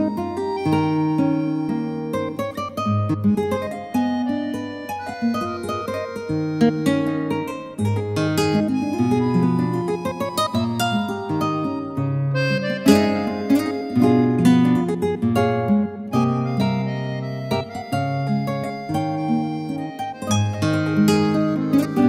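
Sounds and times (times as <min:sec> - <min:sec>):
keyboard melody: 0:00.0 - 0:22.0.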